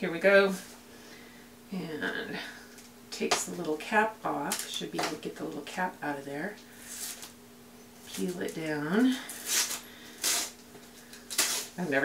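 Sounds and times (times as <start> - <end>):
tape peeling off cardboard: 9.4 - 10.6, 11.3 - 11.8.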